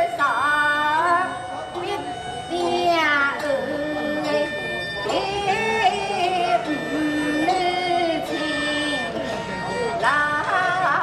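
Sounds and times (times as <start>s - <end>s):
bamboo flute: 0.0s - 11.0s
plucked lute: 0.0s - 11.0s
woman singing ornamented line: 1.9s - 9.2s.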